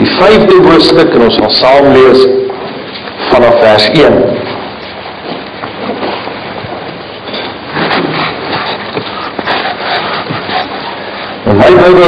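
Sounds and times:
man speaking: 0:00.0 - 0:02.6, 0:03.2 - 0:04.5, 0:11.4 - 0:12.0.

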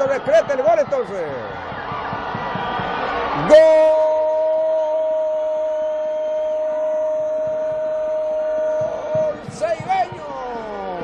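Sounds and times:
commentator shouting goal call: 0:03.4 - 0:11.0.

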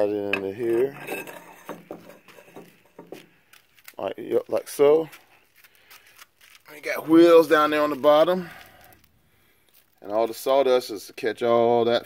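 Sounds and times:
metal rod sliding in tube: 0:00.6 - 0:03.1.

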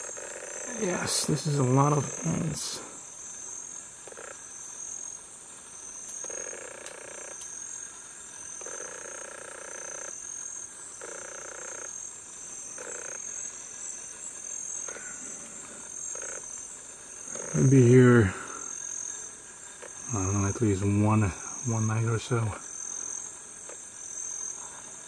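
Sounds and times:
high-pitched insect chorus: 0:00.0 - 0:25.0.

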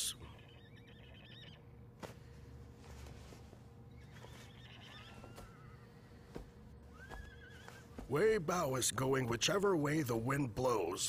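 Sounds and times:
low steady hum: 0:00.0 - 0:11.0
faint horse whinnies: 0:04.0 - 0:05.9, 0:06.9 - 0:08.0.

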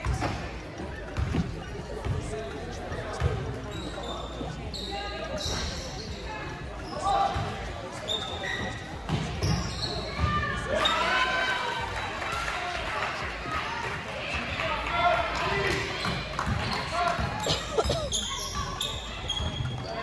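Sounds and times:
sneakers squeaking: 0:00.0 - 0:11.1, 0:15.6 - 0:20.0.

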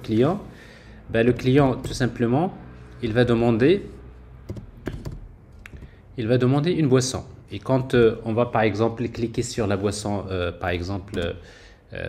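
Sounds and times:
keyboard key taps: 0:04.5 - 0:06.0.

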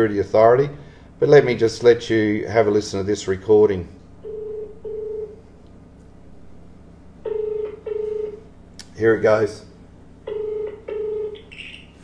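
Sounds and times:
telephone ringback tone: 0:04.2 - 0:05.4, 0:07.2 - 0:08.4, 0:10.3 - 0:12.0.

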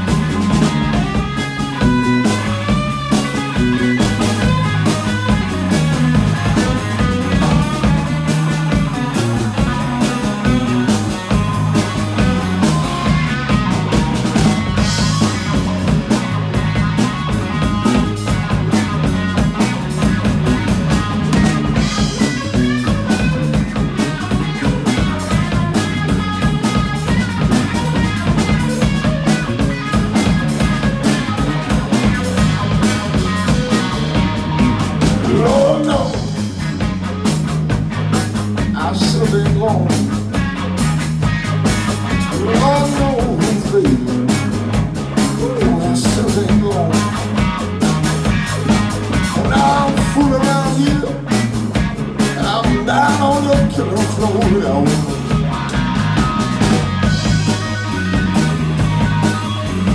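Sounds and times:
bass guitar: 0:00.0 - 0:59.9
drum kit: 0:00.0 - 0:59.9
electric guitar: 0:00.0 - 0:59.9.

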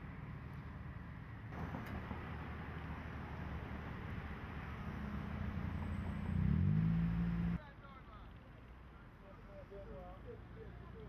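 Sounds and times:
car driving past: 0:04.2 - 0:07.6.

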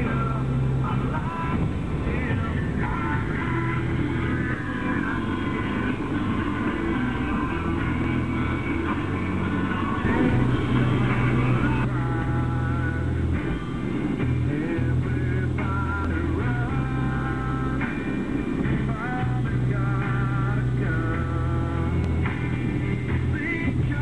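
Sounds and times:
car driving drone: 0:00.0 - 0:24.0
rock music with singing: 0:00.0 - 0:24.0.

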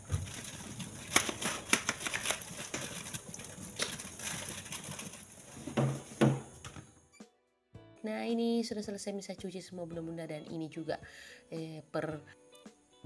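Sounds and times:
plastic racks clattering: 0:00.0 - 0:06.8.

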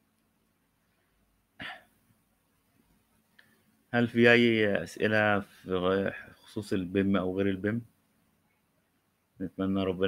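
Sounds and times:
man's throat noise: 0:01.6 - 0:02.0.

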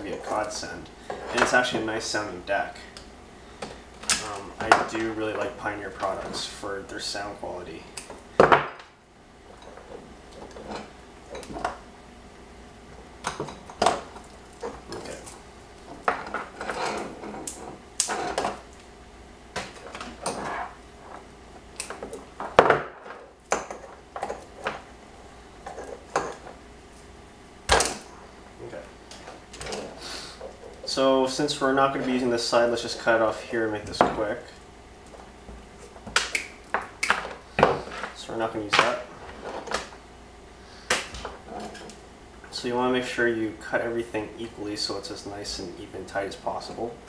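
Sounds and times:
wires rustling: 0:00.0 - 0:43.2.

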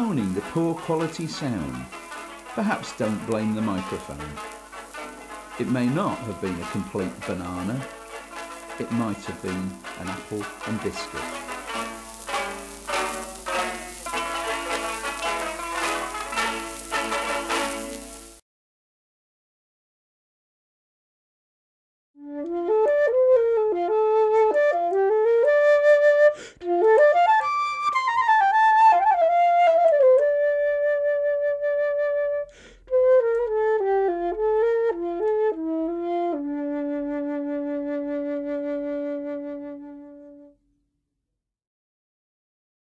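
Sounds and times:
flute melody: 0:00.0 - 0:18.4, 0:22.2 - 0:40.6.

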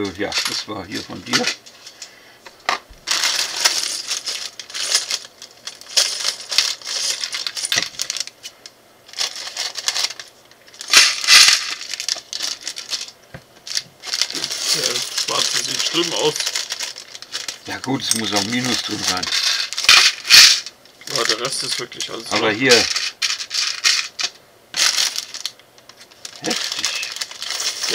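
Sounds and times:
plastic bags crinkling: 0:03.0 - 0:27.9
plastic bricks clattering: 0:03.1 - 0:08.3, 0:09.1 - 0:27.9.

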